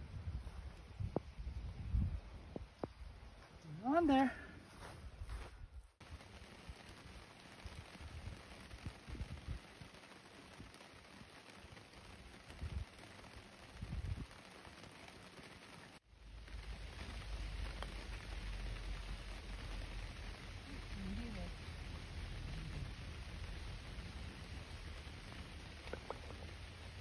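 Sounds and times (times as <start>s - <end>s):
wind rumbling on microphone: 0.0s - 3.6s, 4.7s - 27.0s
light rain hiss: 0.0s - 27.0s.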